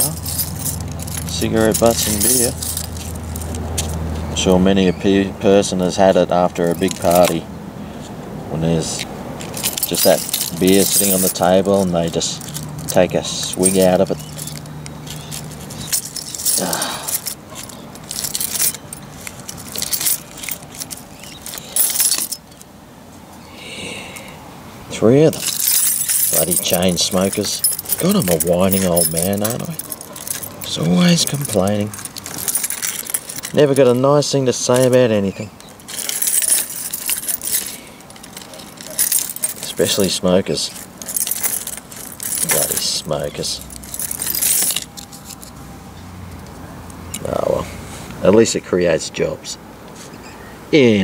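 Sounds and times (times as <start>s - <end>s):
keys jangling on a ring: 0.0s - 4.4s, 6.3s - 7.4s, 8.9s - 22.7s, 25.3s - 45.6s.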